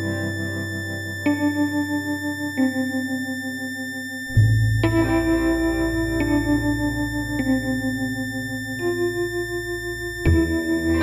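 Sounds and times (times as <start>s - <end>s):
sustained synthesizer notes: 0.0s - 11.0s.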